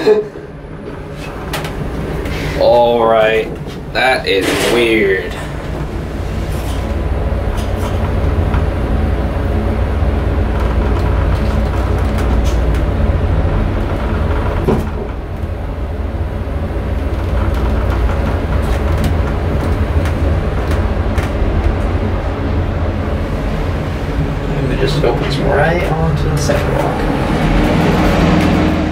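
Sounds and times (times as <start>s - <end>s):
elevator rumble and hum: 0.0s - 28.9s.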